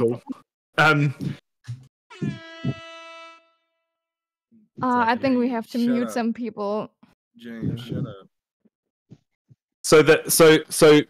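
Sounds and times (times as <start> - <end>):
buzzy horn-like note: 2.1 - 3.9.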